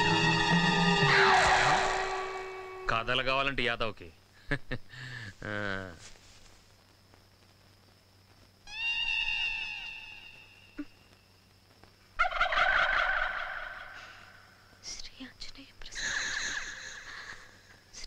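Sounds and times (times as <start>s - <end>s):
high warbling animal calls: 0.0s - 2.9s, 8.7s - 10.9s.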